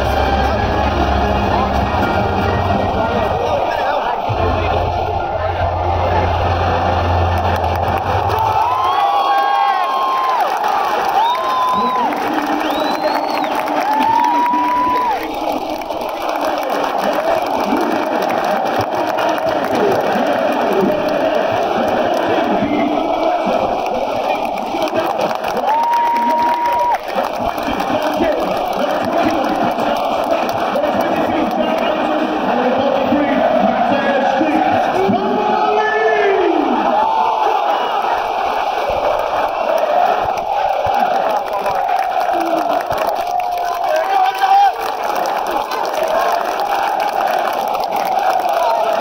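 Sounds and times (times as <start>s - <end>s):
stadium crowd cheering: 0.0s - 49.0s.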